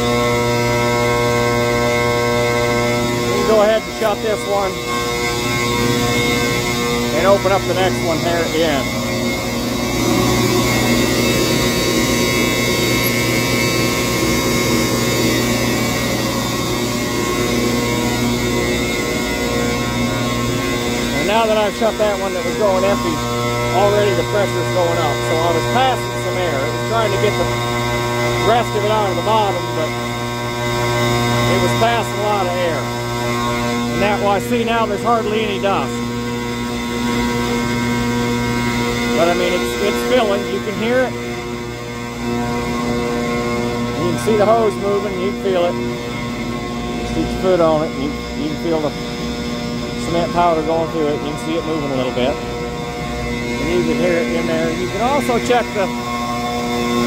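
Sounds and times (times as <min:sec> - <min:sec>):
blower droning: 0:00.0 - 0:57.0.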